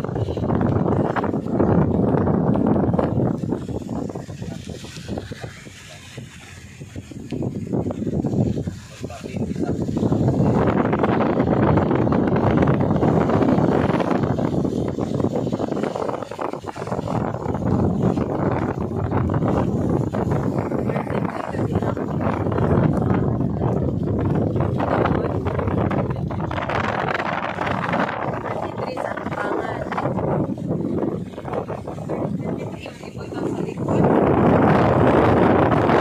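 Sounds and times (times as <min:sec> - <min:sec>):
road noise: 0:00.0 - 0:36.0
wind rushing over microphone: 0:00.0 - 0:36.0.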